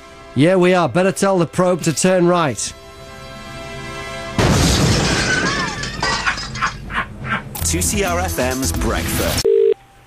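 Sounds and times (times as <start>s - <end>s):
debris clinking and clattering: 4.4s - 6.9s
glass shattering and tinkling: 4.8s - 6.8s.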